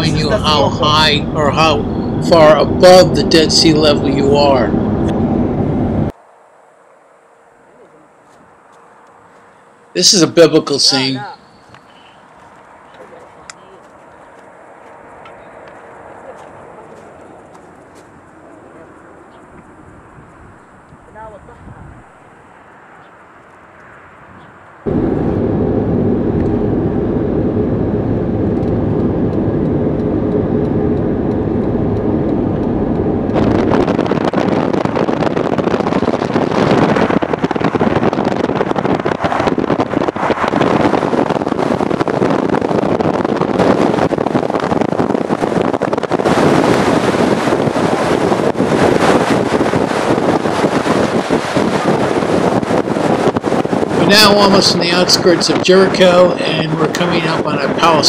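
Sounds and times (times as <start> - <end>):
car engine drone and road noise: 0.0 - 58.0
rush of wind and road noise: 0.0 - 58.0.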